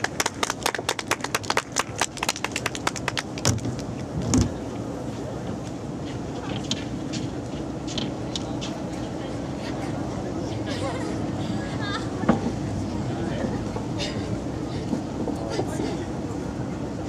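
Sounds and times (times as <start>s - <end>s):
audience clapping: 0.0s - 3.8s
steady background noise: 0.0s - 17.0s.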